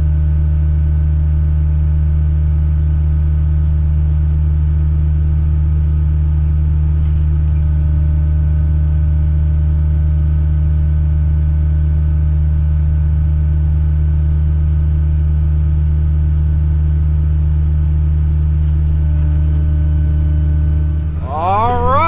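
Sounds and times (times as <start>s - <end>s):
tractor diesel engine drone: 18.8s - 22.0s.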